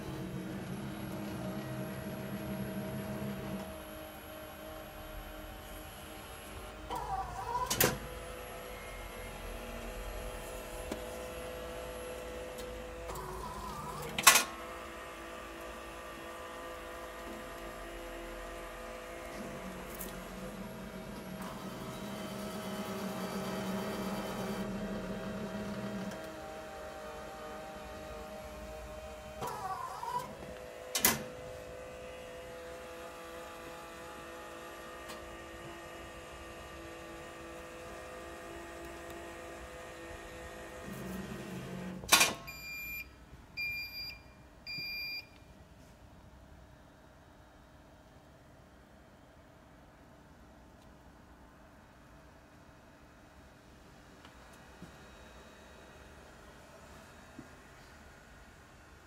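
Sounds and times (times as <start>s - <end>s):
laminator motor hum: 0.0s - 42.2s.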